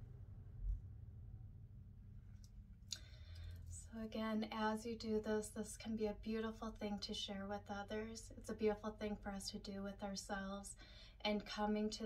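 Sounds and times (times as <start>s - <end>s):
low hum: 0.0s - 5.8s
soft breathy hiss: 10.6s - 11.3s.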